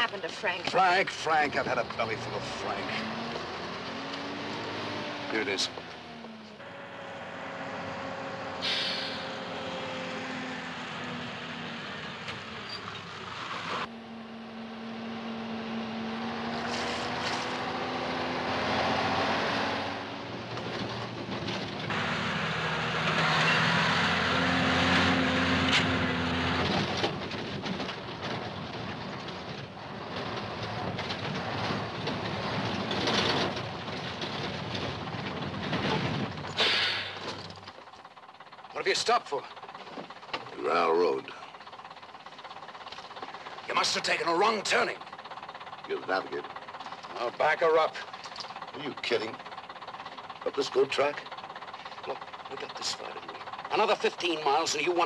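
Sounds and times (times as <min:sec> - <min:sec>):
lorry engine running: 0:00.0 - 0:55.0
road rumble: 0:00.0 - 0:55.0.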